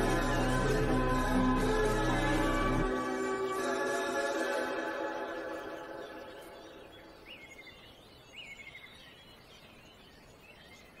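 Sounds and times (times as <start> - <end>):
slowed reverb-heavy pop song: 0.0 - 5.7
songbird chirps: 0.0 - 11.0
faint steady hiss: 3.8 - 11.0.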